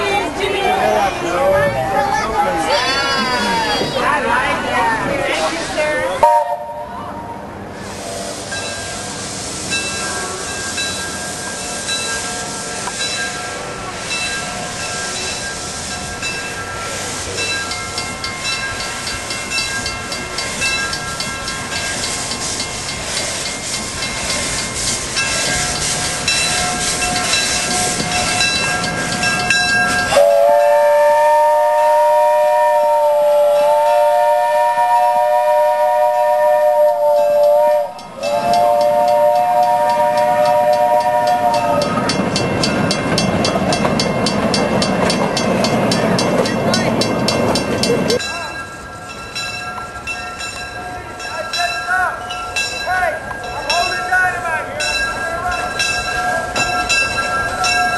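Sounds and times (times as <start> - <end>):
steam train rushing and hissing: 0.0 - 57.9
steam locomotive chime whistle: 6.2 - 57.9.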